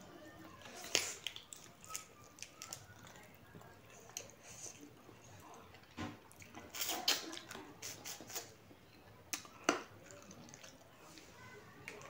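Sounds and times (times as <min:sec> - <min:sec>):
chewing and lip smacks: 0:00.6 - 0:11.0.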